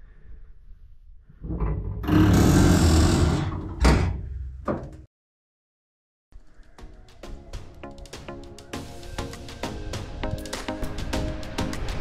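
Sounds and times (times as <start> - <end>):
metal door scraping open: 1.4 - 4.4.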